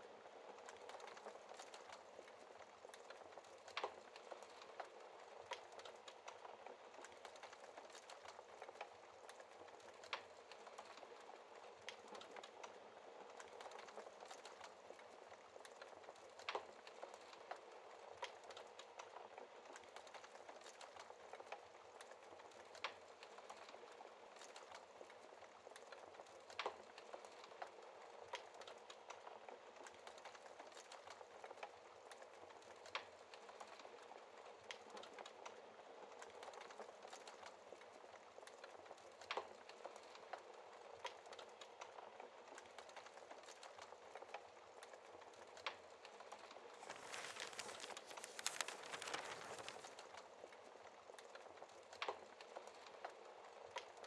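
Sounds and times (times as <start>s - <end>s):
wood fire crackling: 0.0s - 54.0s.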